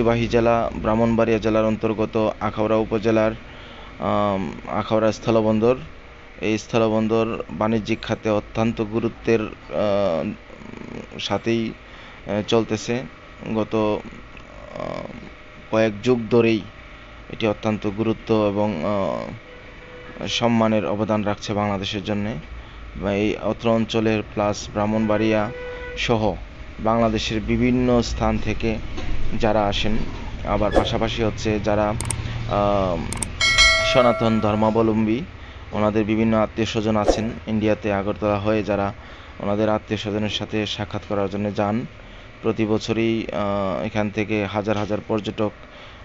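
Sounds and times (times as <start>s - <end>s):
mouse clicks: 33.2s - 33.4s, 37.1s - 37.4s
notification bell ding: 33.2s - 35.0s.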